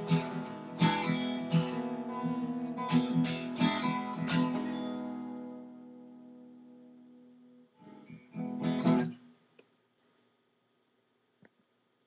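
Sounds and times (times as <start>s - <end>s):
acoustic guitar strumming: 0.0s - 9.2s.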